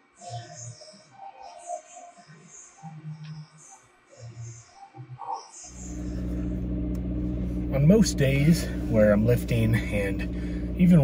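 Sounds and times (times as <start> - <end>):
faint music: 0.0 - 11.0
car engine idling: 5.7 - 11.0.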